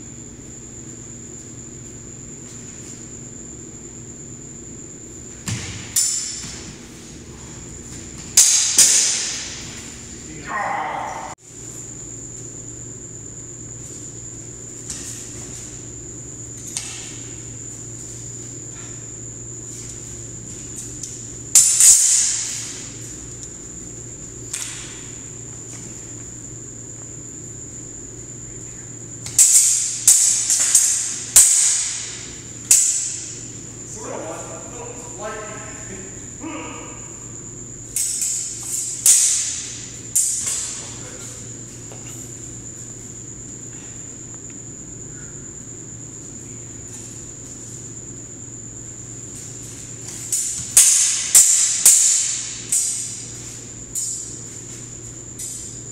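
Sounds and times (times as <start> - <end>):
steel swords clashing: 8.4 - 9.6, 38.0 - 40.9, 50.2 - 53.3.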